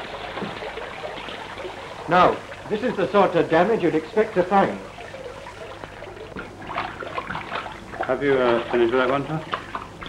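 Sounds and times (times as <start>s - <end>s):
film soundtrack hiss and crackle: 0.0s - 10.0s.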